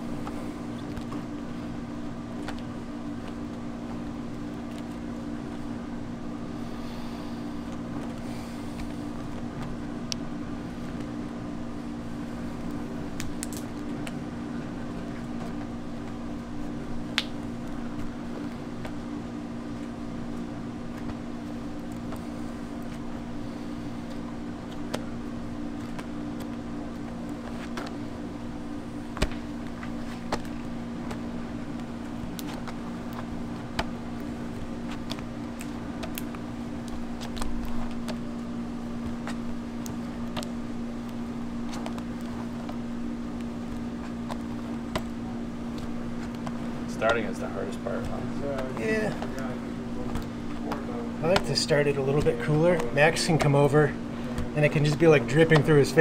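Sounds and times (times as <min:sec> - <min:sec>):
low mechanical hum: 0:00.0 - 0:56.0.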